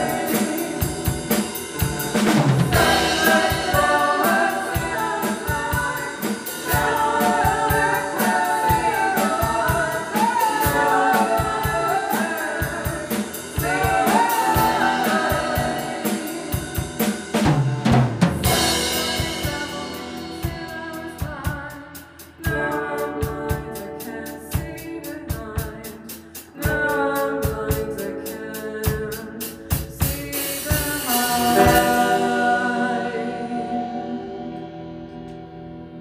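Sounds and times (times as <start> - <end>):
woman singing: 0.0 - 1.6, 2.7 - 17.2, 18.4 - 34.9
drum kit beat: 0.0 - 33.2
electric guitar: 31.4 - 36.0.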